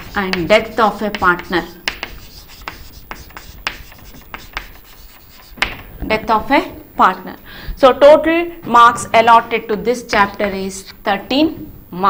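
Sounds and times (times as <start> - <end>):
chalk writing on chalkboard: 0.0 - 5.9.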